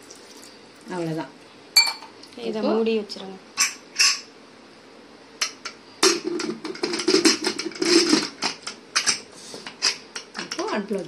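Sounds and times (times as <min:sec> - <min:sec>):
metallic clattering and scraping: 0:06.2 - 0:09.2.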